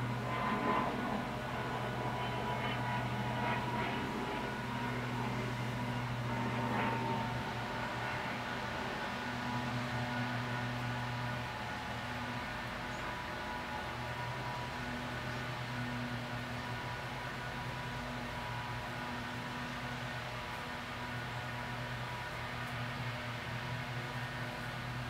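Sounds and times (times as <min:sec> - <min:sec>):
steady low hum: 0:00.0 - 0:25.0.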